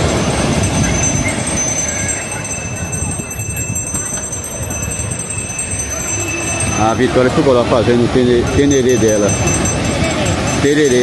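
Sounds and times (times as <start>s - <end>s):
voices of beach crowd: 0.0s - 11.0s.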